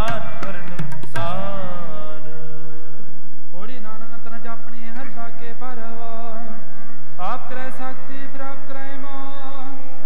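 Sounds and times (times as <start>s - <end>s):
person singing: 0.0s - 2.8s, 4.9s - 10.0s.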